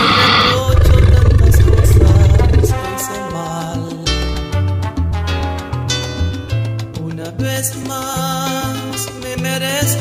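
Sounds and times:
hissing sweep: 0.0 - 2.8
deep rough roar effect: 0.0 - 2.9.

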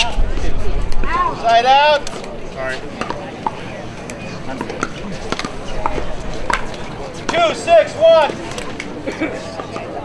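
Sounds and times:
low chatter: 0.0 - 10.0.

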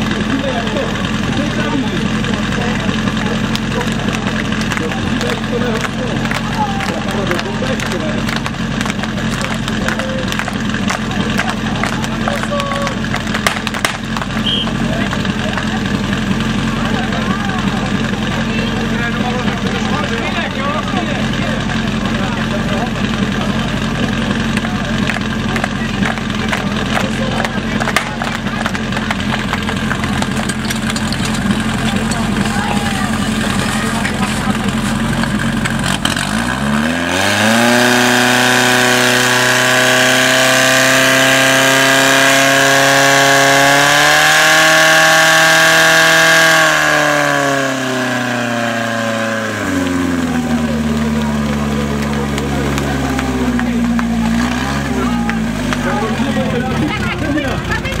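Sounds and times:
fire pump engine revving: 0.0 - 58.0.

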